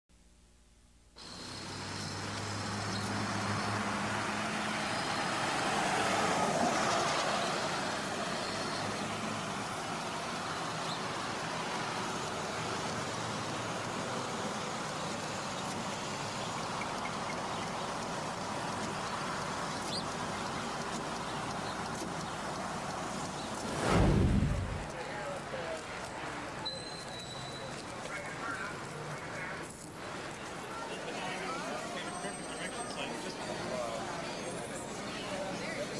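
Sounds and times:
steady hiss of traffic: 1.1 - 35.9
low engine hum: 23.2 - 25.0
vehicle passing: 23.5 - 25.0
short low thud: 23.6 - 24.9.

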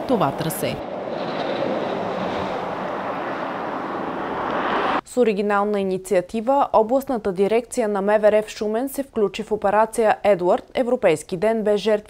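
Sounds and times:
steady rushing outdoor noise: 0.0 - 5.0.

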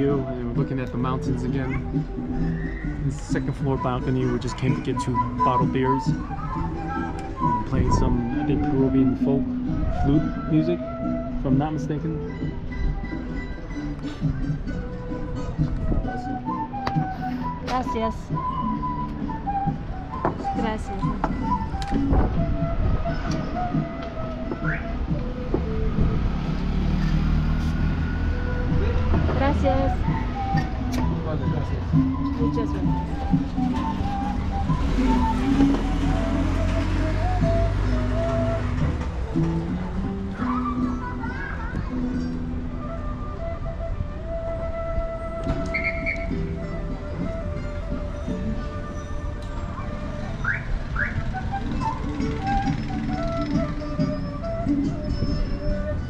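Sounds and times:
folk flute music: 0.0 - 56.0
rising whistled notes: 2.3 - 11.5, 16.1 - 25.2, 26.9 - 28.7, 29.5 - 39.4, 42.2 - 56.0
small engine low rumble: 47.0 - 56.0.

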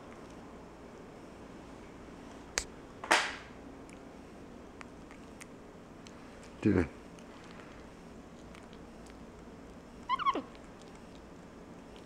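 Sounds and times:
monkey squeak: 10.1 - 10.5.

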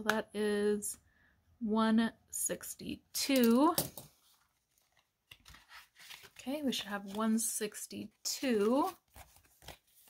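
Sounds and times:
paper rustling and clicks: 4.8 - 7.2, 8.6 - 10.0.

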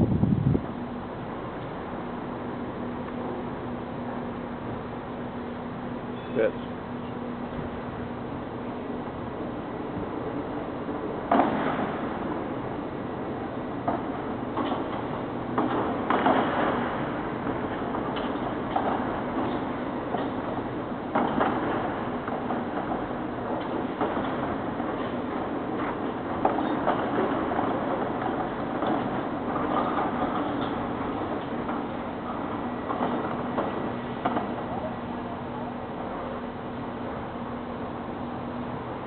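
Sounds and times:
hangar door rolling rumble: 0.0 - 39.0.

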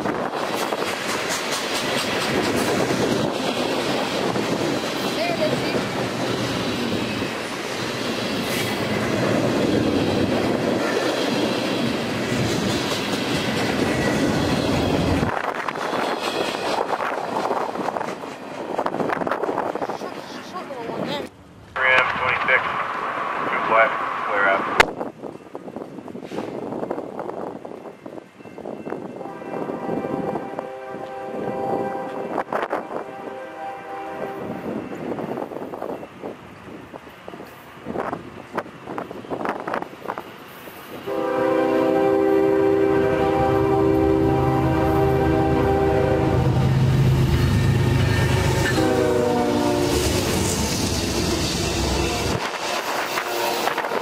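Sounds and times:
locomotive engines rumbling: 0.0 - 54.0
train cars rolling: 0.0 - 54.0
locomotive air horn blasts: 29.2 - 34.7, 41.1 - 46.7, 48.2 - 50.2, 51.4 - 54.0.

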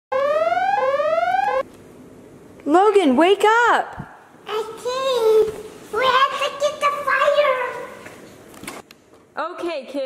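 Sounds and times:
electronic whooping alarm: 0.1 - 1.6.

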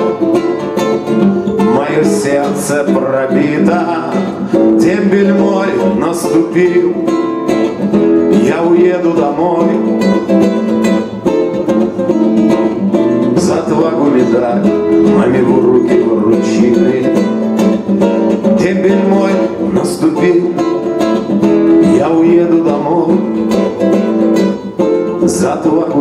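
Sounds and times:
classical guitar strummed: 0.0 - 26.0.

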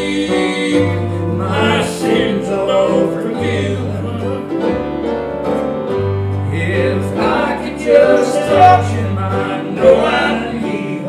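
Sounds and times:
held bass notes: 0.0 - 11.0
mandolin picking: 3.6 - 9.7.

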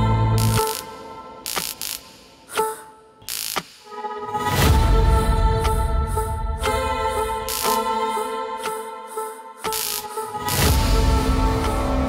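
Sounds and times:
sustained musical tones: 3.9 - 12.0.

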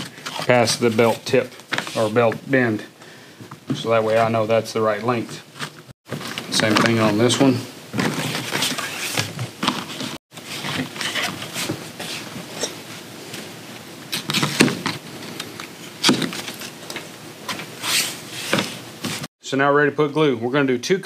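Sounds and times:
leather scraping and rustling: 5.2 - 13.1, 17.5 - 19.3.

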